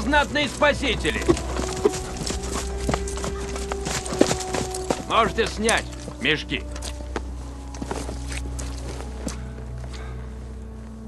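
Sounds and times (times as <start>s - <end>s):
horse hooves clopping: 0.0s - 9.9s.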